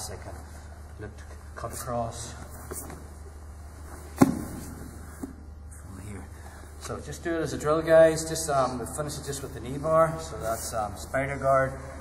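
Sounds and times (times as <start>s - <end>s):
body thumping onto foam mat: 4.1s - 5.4s.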